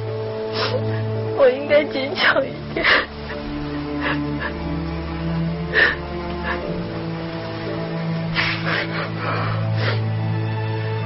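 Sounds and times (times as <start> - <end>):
film music with held notes: 0.0 - 11.0
woman sobbing softly: 2.2 - 4.7
catching breaths: 4.0 - 4.5, 5.7 - 6.8, 8.4 - 10.1.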